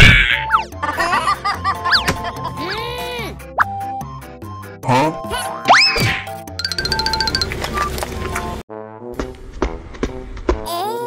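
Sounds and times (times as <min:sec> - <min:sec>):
playful background music: 0:00.0 - 0:11.0.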